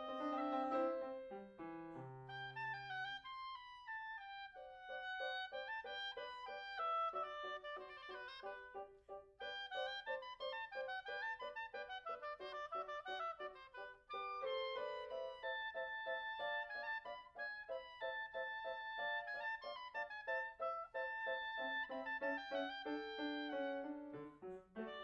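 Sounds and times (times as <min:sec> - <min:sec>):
oboe playing short detached notes: 0:00.0 - 0:25.0.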